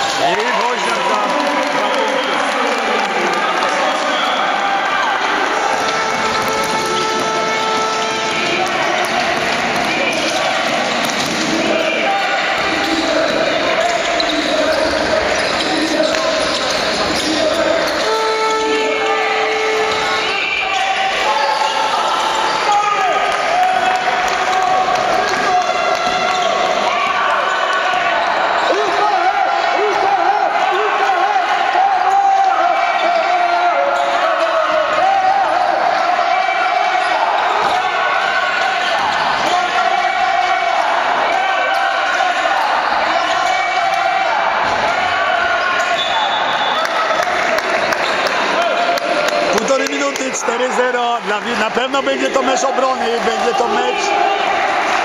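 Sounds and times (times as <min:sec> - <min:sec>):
shoes squeaking on hardwood: 0:05.5 - 0:10.0.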